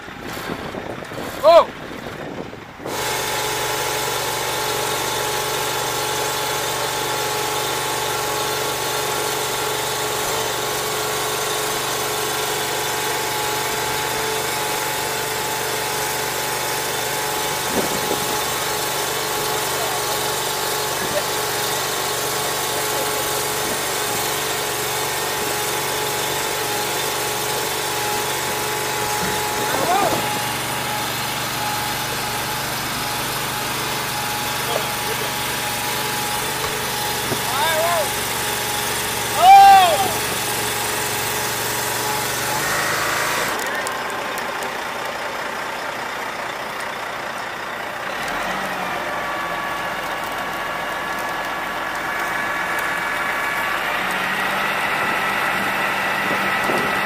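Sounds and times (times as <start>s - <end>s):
small engine running steadily: 0.0s - 57.0s.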